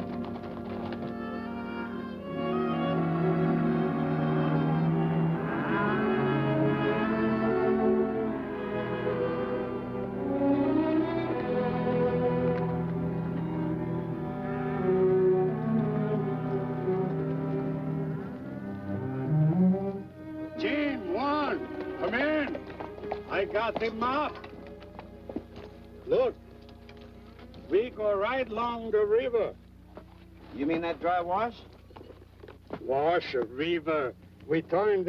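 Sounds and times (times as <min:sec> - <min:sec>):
orchestral music with low strings: 0:00.0 - 0:31.6.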